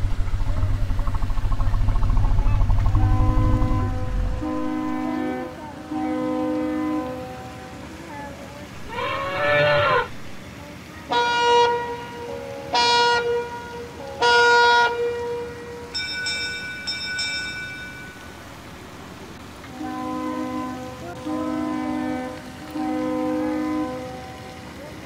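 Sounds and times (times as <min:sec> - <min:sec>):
horn-like electronic tones: 0:00.0 - 0:07.3.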